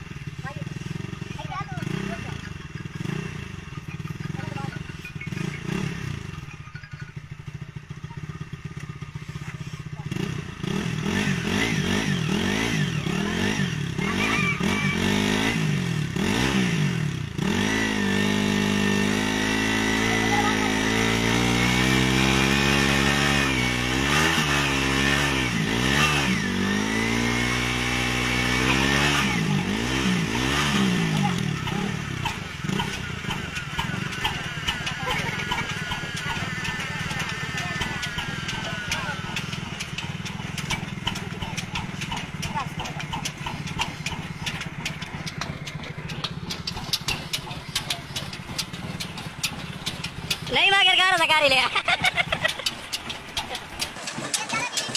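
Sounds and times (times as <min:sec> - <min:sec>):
motorcycle engine revving: 0:00.0 - 0:54.9.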